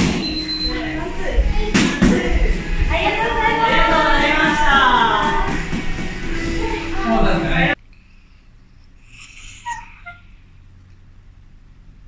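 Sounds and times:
dog high whines: 0:09.2 - 0:10.4
dog whimpering: 0:09.2 - 0:10.4.

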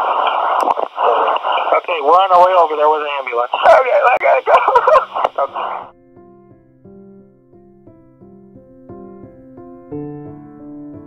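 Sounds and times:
man sobbing over phone line: 0:03.6 - 0:05.9.

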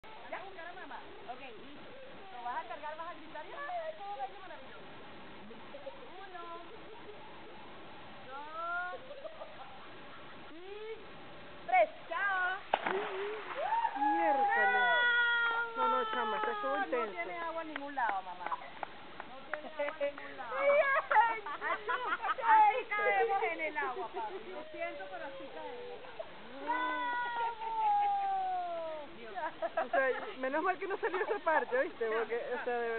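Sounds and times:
water splash: 0:12.6 - 0:14.2.

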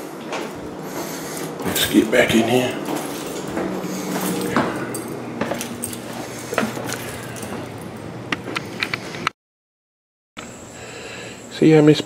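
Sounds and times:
steady low hum: 0:00.0 - 0:09.3.

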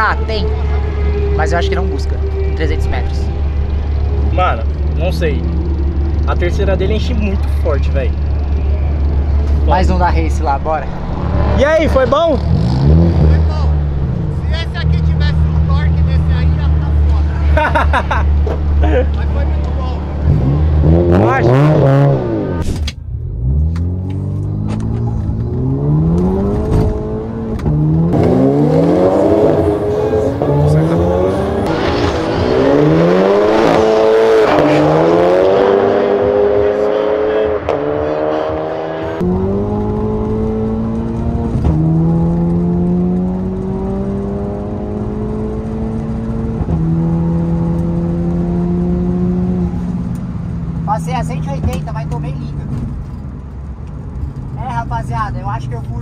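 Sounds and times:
cars accelerating hard: 0:00.0 - 0:54.7.

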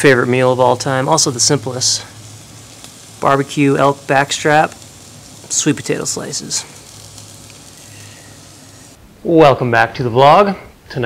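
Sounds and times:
food sizzling on a grill: 0:00.0 - 0:09.0.

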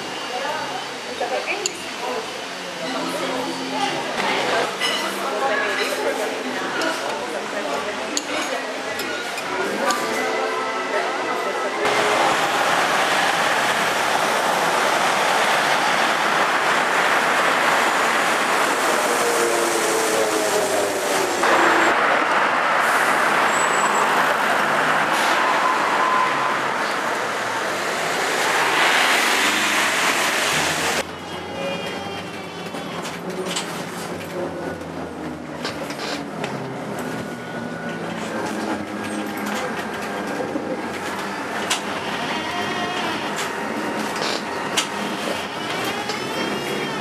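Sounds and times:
inside moving trolleybus: 0:00.0 - 0:47.0
cars passing on wet road: 0:11.9 - 0:31.1.

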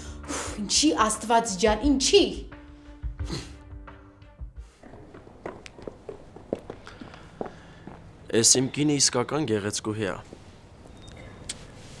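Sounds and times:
footsteps on hard surface: 0:04.6 - 0:08.2.

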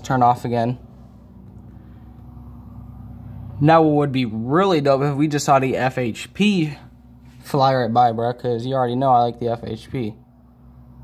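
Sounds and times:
car approaching outside: 0:00.0 - 0:05.2
steady low hum: 0:00.0 - 0:11.0.

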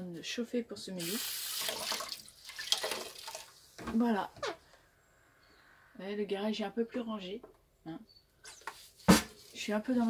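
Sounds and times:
tap water running into sink: 0:01.1 - 0:03.5.

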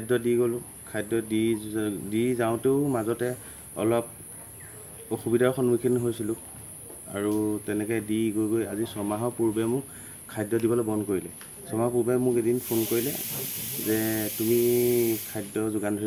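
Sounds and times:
man talking: 0:07.1 - 0:16.0
insect chorus droning: 0:11.7 - 0:16.0.

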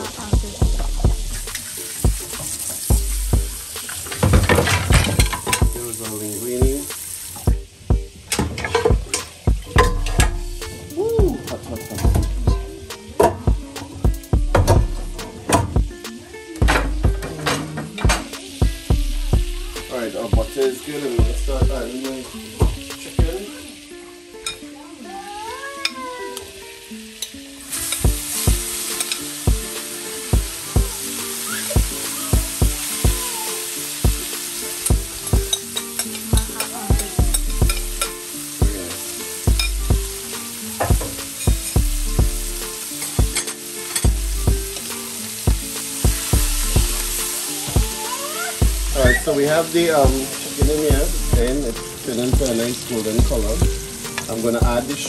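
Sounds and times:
chicken sizzling in oil: 0:00.0 - 0:17.3, 0:17.9 - 0:55.0
quiet background music: 0:00.0 - 0:55.0
spoon knocking and scraping pan: 0:01.4 - 0:05.8, 0:08.3 - 0:10.4, 0:34.2 - 0:38.2, 0:40.8 - 0:42.4.

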